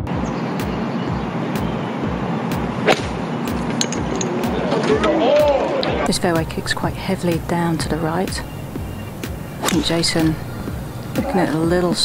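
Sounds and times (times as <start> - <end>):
voices rising: 0.0 - 12.0
murmur of crowd outdoors: 0.1 - 12.0
golf club striking ball: 2.8 - 4.5, 7.4 - 11.6.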